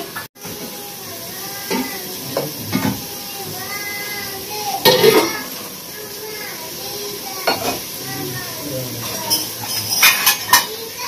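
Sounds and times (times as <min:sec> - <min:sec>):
gas stove hiss: 0:00.0 - 0:11.0
metal utensils clinking on pots: 0:07.4 - 0:08.0, 0:09.0 - 0:11.0.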